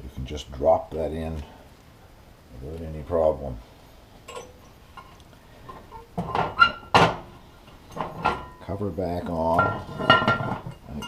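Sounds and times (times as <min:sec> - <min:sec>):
metal lid clanking on stove grate: 0:09.5 - 0:11.0.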